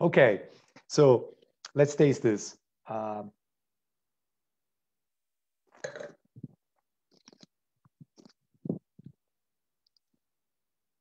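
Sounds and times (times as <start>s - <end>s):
person slurping wine: 5.8s - 6.2s
wet mouth clicks and smacks: 7.1s - 9.1s.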